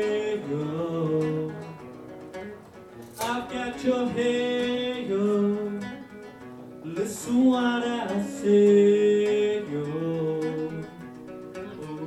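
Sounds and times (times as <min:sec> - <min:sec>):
man singing long notes: 0:00.0 - 0:01.7, 0:03.2 - 0:06.0, 0:06.8 - 0:12.0
acoustic guitar strumming: 0:00.0 - 0:12.0.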